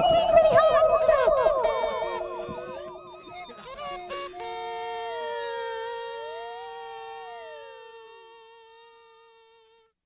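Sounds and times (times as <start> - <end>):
gliding electronic chord: 0.0 - 8.5.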